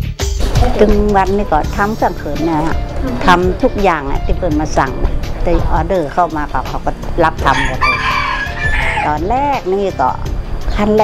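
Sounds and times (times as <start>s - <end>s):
soft music: 0.0s - 11.0s
person speaking: 0.6s - 7.8s
rooster crowing: 7.5s - 9.2s.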